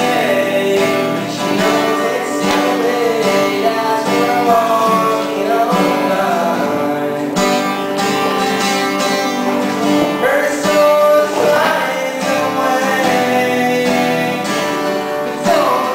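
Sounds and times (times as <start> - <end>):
acoustic guitar: 0.0 - 15.9
man singing: 0.0 - 15.9.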